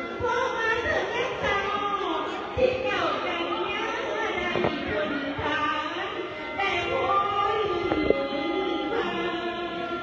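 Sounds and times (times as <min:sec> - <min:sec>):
sustained instrumental tones: 0:03.2 - 0:10.0
person singing long wavering notes: 0:06.5 - 0:10.0.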